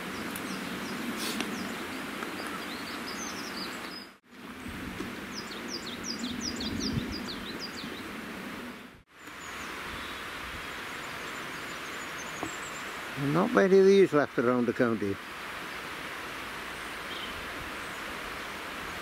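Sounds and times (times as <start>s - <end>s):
songbird singing: 0.0s - 14.8s, 16.6s - 19.0s
steady background hiss: 7.2s - 19.0s.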